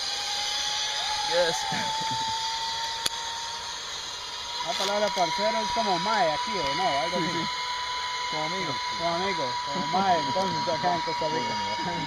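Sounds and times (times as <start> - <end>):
zip-line pulleys whirring on cable: 0.0 - 12.0.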